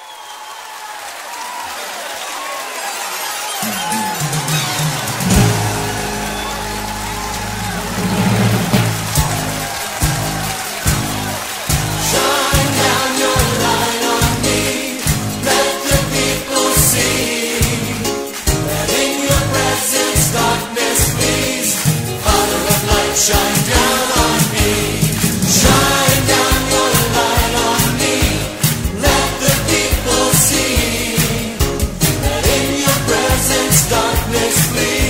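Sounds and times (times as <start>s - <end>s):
rock band playing: 3.6s - 35.0s
sharp drum hits: 4.4s - 6.6s, 7.6s - 12.0s, 24.7s - 27.1s
choir singing: 4.6s - 35.0s.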